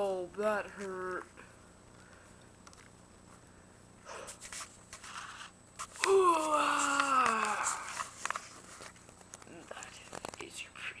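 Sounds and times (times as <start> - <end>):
faint whispering: 9.5 - 11.0.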